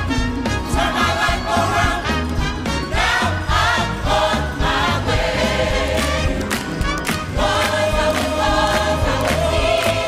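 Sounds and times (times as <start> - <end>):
choir singing: 0.6 - 2.3, 2.9 - 6.6, 7.2 - 10.0.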